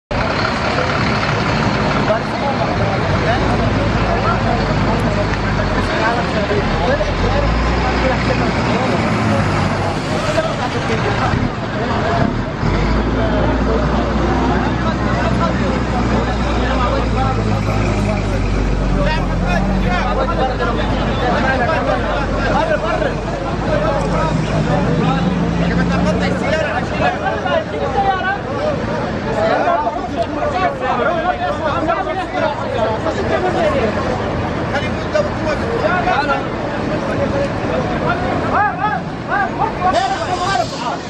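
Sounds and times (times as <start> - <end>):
bus engine humming: 0.1 - 41.0
crowd talking and calling out: 0.1 - 41.0.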